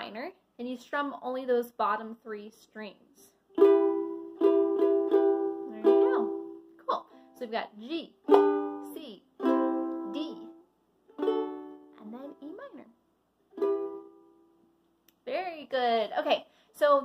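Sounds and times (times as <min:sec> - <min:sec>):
ukulele chords strummed: 0:03.5 - 0:07.2, 0:08.0 - 0:12.7, 0:13.5 - 0:14.5.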